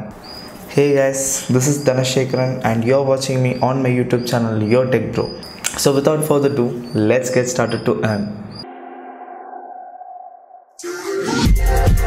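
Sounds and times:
held electronic tone: 0.0 - 10.8
electronic intro music: 8.6 - 12.0.

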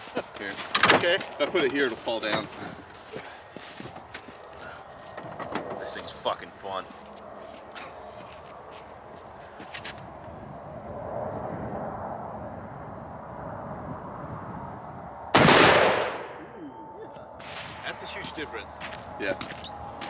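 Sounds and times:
faint outdoor ambience: 0.0 - 20.0
rifle shot with ringing tail: 15.3 - 16.5.

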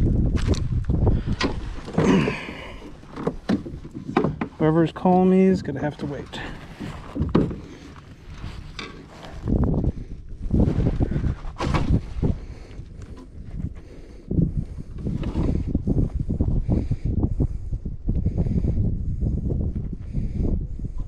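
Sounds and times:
wind buffeting microphone: 0.0 - 21.0
knocks and rustles: 0.3 - 4.7, 5.6 - 9.6, 10.6 - 12.4.

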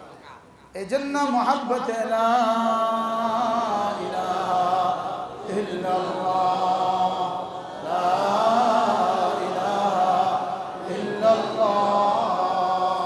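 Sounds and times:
man chanting into a microphone: 0.7 - 13.0.

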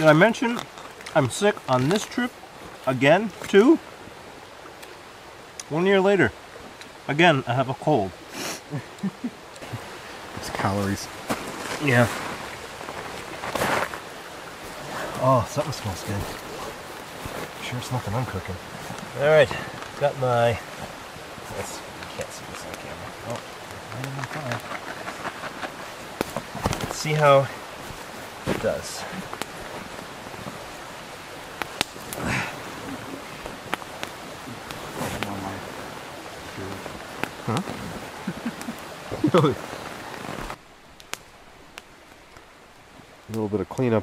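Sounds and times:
campfire crackling and popping: 0.0 - 44.0
flowing stream water: 0.0 - 44.0.

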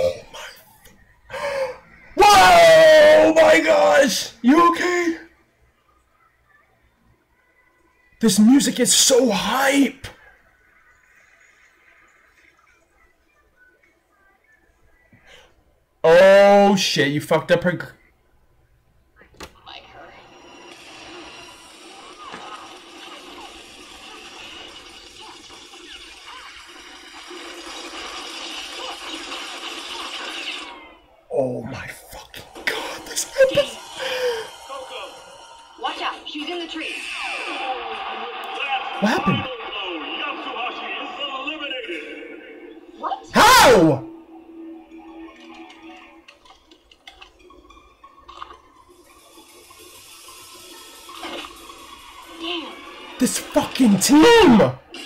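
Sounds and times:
soft background music: 41.7 - 54.8.

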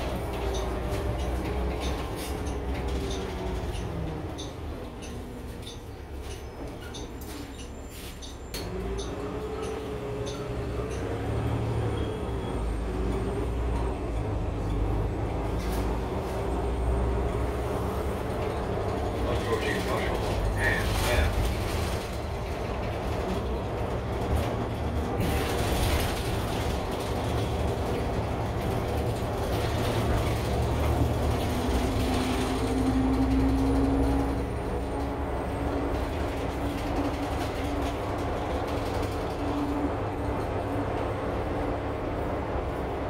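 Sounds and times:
bus engine and road rumble: 0.0 - 43.0.

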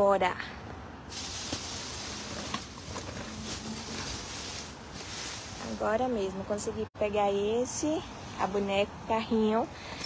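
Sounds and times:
plastic bags rustling: 1.1 - 6.2.

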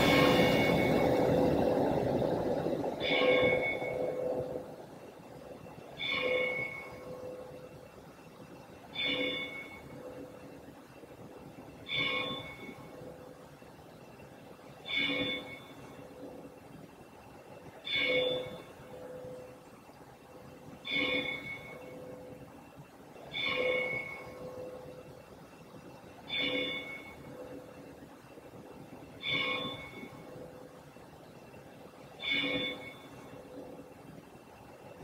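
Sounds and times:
church bell tolling: 0.0 - 5.0, 6.0 - 7.6, 26.3 - 27.6.

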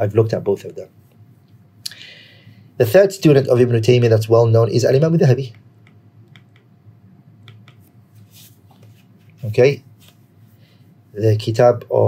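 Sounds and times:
low steady hum: 0.0 - 12.0
stylus tapping on tablet screen: 5.5 - 6.8, 7.4 - 7.9.

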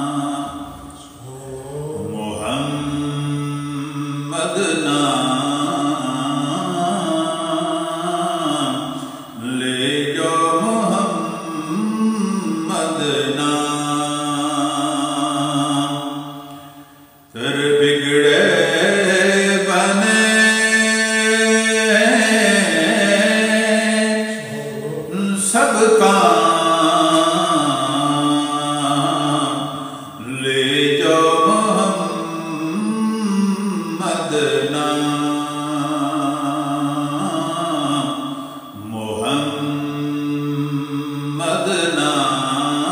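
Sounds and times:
man singing chant-like: 0.0 - 42.9.

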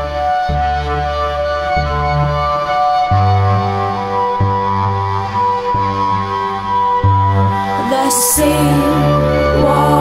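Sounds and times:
low bowed cello notes: 4.4 - 10.0
sustained higher cello tones: 7.4 - 10.0.

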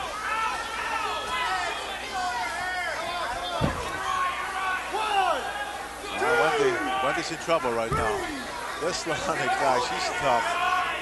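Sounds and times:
arena noise: 0.0 - 11.0.

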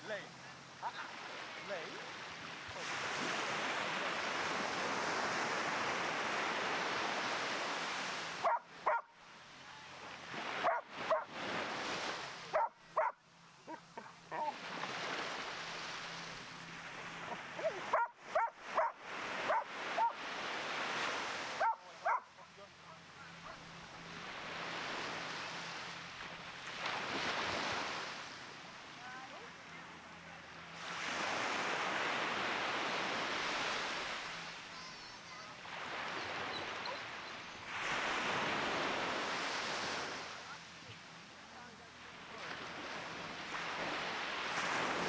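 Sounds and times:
small waves breaking on shore: 0.0 - 45.0
dog barking: 8.4 - 9.1, 10.6 - 11.3, 12.5 - 14.6, 17.2 - 20.2, 21.6 - 22.5, 36.8 - 37.1.

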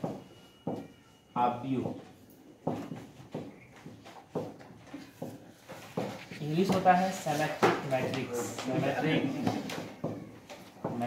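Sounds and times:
marker writing on whiteboard: 0.0 - 11.0.

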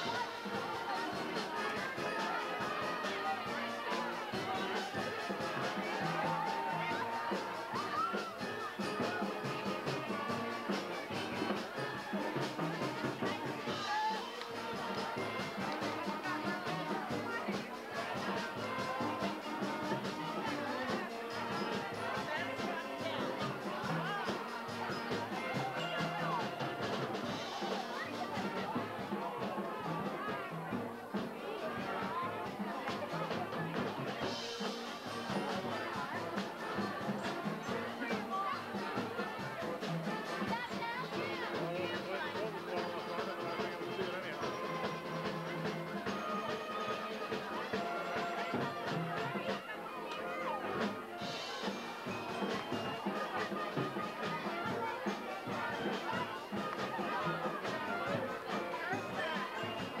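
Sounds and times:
brass band playing: 0.0 - 60.0
crowd chatter: 0.0 - 60.0.

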